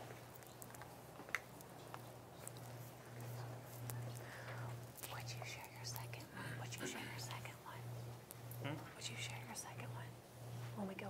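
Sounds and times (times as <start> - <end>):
person whispering: 5.0 - 7.8.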